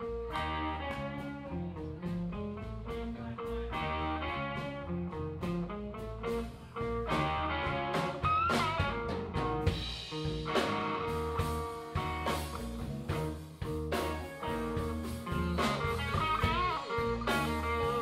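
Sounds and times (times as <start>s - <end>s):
blues-rock band playing: 0.0s - 18.0s
sliding lead guitar note: 3.5s - 13.3s, 13.9s - 18.0s.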